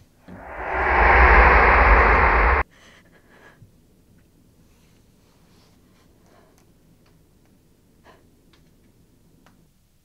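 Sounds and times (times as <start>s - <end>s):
deep rumble: 0.3s - 2.6s
rushing horror sound effect: 0.3s - 2.6s.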